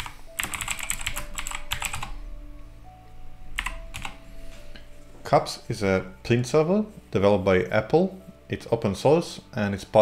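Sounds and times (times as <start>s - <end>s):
keyboard typing: 0.0s - 2.2s, 3.6s - 4.2s
soft background music: 0.0s - 10.0s.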